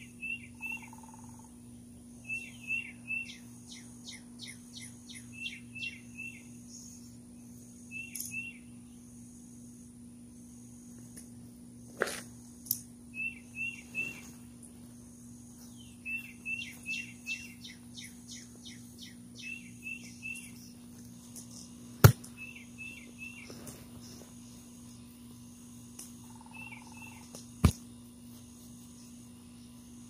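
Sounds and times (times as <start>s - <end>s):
bird chirping: 0.0s - 7.2s, 7.8s - 8.8s, 13.1s - 14.4s, 15.6s - 20.9s, 22.3s - 25.0s, 26.2s - 27.3s
faint low hum: 0.0s - 30.0s
high insect drone: 0.0s - 30.0s.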